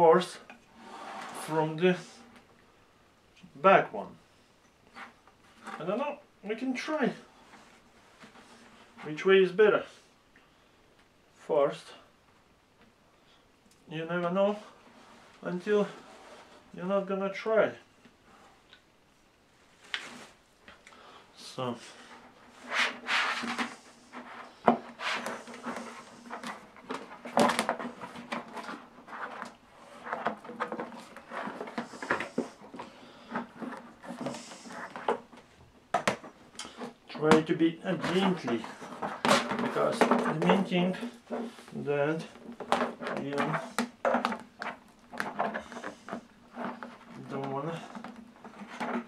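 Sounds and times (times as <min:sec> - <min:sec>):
plastic sheet rustling and scraping: 0:21.7 - 0:35.6, 0:36.2 - 0:49.0.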